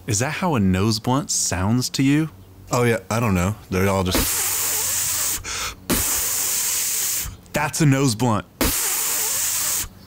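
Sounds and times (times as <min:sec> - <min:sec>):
man hissing shh: 0:04.2 - 0:07.4, 0:08.6 - 0:10.0.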